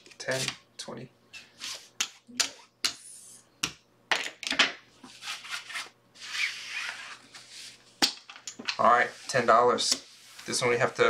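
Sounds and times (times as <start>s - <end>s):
playing cards sliding rustle: 5.1s - 7.8s.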